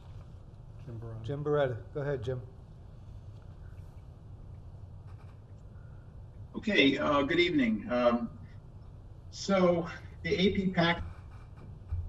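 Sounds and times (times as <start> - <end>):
faint rustling: 0.0 - 1.4, 2.6 - 6.5, 10.8 - 12.0
low steady hum: 0.0 - 12.0.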